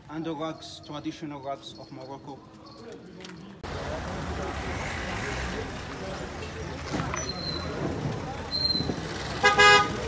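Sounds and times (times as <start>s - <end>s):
street noise: 0.0s - 10.0s
car and motorbike engines: 3.6s - 10.0s.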